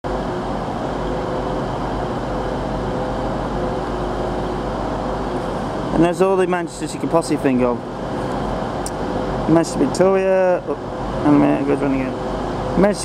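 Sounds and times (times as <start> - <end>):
idling diesel trains rumbling: 0.0 - 13.0.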